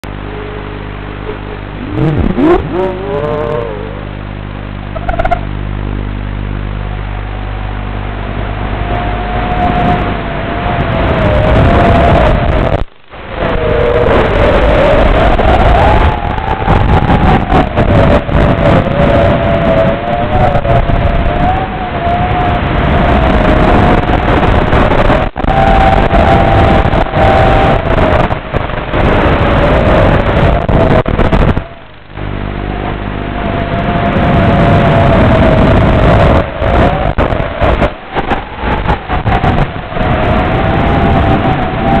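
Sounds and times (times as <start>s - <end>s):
drone motors whining: 0.0s - 42.0s.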